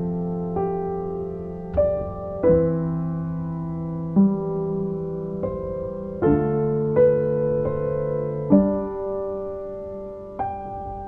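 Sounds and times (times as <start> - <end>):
slow soft piano music: 0.0 - 11.0.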